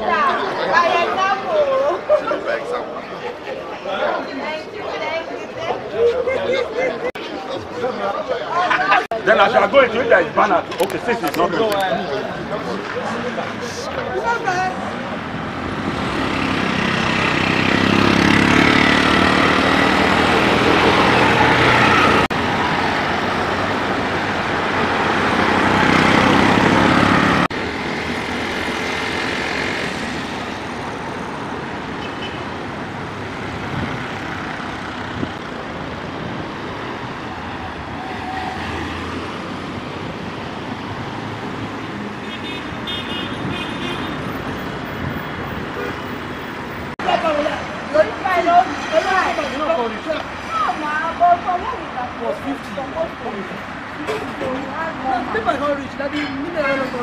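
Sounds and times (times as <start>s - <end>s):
road traffic noise: 0.0s - 57.0s.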